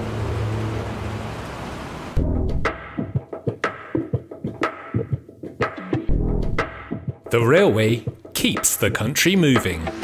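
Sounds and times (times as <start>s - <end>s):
train running noise: 0.0s - 2.2s.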